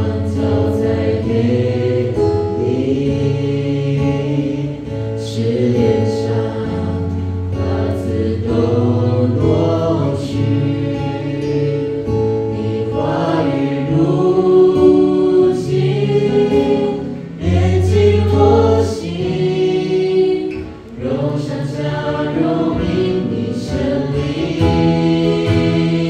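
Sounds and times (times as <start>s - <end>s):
group singing worship song: 0.0s - 26.0s.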